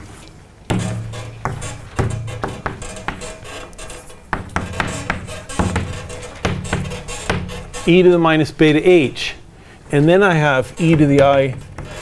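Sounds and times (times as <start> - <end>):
chalk tapping on blackboard: 0.7 - 7.9, 10.8 - 12.0.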